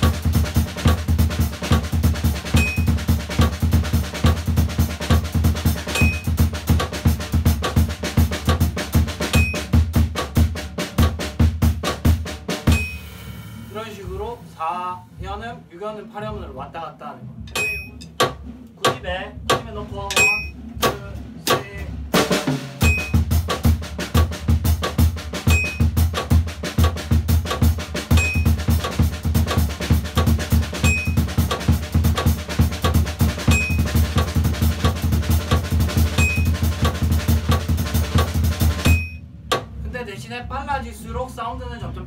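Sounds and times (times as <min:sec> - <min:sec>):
drum kit playing: 0:00.0 - 0:41.9
high metronome beep: 0:02.6 - 0:03.0, 0:05.9 - 0:06.4, 0:09.3 - 0:09.8, 0:12.7 - 0:13.1, 0:17.5 - 0:18.1, 0:20.1 - 0:20.6, 0:22.8 - 0:23.2, 0:25.5 - 0:25.9, 0:28.1 - 0:28.6, 0:30.8 - 0:31.3, 0:33.5 - 0:34.0, 0:36.2 - 0:36.6, 0:38.8 - 0:39.3.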